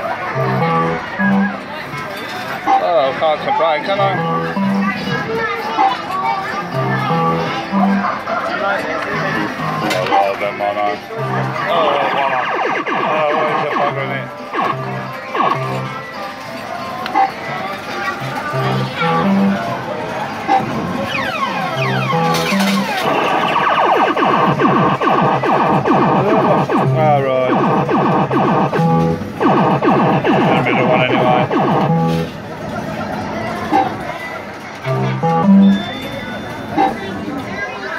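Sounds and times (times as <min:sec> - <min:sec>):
fruit machine electronic tune: 0:00.0 - 0:01.8, 0:02.8 - 0:05.2, 0:06.5 - 0:08.3, 0:09.0 - 0:16.2, 0:18.2 - 0:19.9, 0:20.5 - 0:32.4, 0:34.8 - 0:36.4
slot machine reels spinning: 0:00.2 - 0:01.6, 0:03.8 - 0:05.0, 0:06.6 - 0:08.2, 0:09.2 - 0:16.0, 0:18.3 - 0:19.7, 0:20.3 - 0:32.4, 0:34.8 - 0:36.8.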